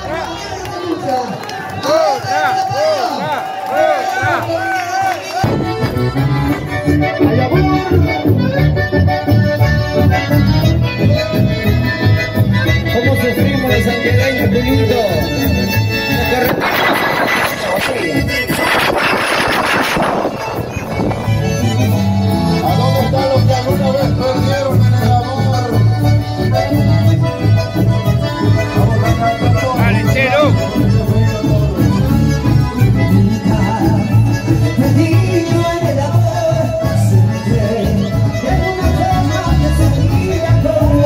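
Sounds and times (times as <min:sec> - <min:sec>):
people talking and calling out: 0:00.0 - 0:41.0
button accordion music: 0:05.4 - 0:41.0.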